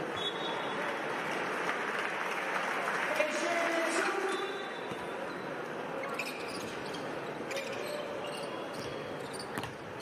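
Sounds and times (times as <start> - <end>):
arena crowd hum: 0.0 - 10.0.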